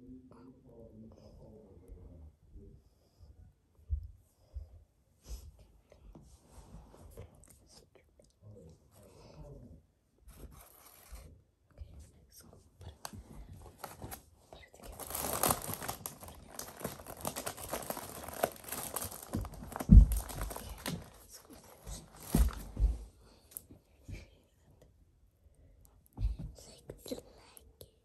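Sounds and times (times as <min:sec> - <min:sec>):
plastic packet crinkling: 0:14.8 - 0:22.7
dull thumps: 0:16.6 - 0:23.1.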